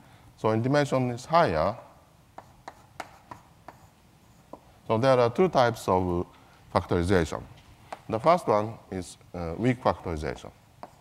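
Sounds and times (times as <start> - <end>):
chalk tapping on blackboard: 2.4 - 4.7, 10.8 - 11.0
man speaking: 4.9 - 7.5, 8.1 - 10.6.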